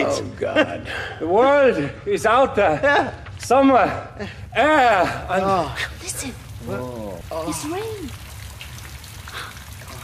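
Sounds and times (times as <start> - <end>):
rain and water dripping: 3.2 - 10.0.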